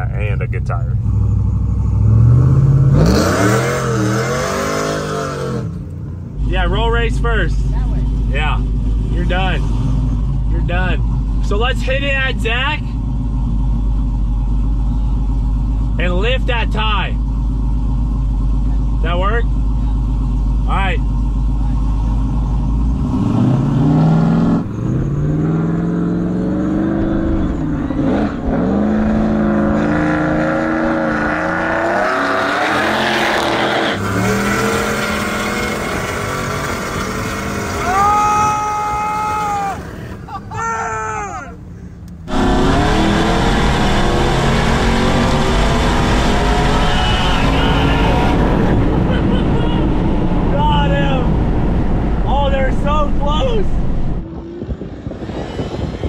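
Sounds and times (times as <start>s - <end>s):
low engine rumble: 0.0s - 3.1s, 5.6s - 31.7s, 33.9s - 56.0s
car engines revving at full throttle: 0.0s - 40.3s, 41.6s - 56.0s.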